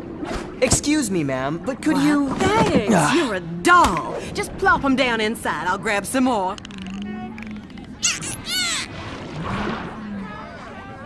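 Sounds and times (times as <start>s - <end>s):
rising and falling glides: 6.8s - 8.9s.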